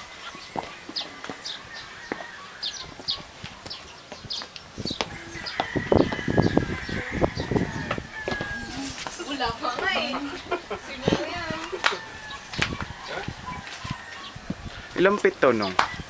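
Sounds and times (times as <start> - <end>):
birds chirping: 0.0 - 16.0.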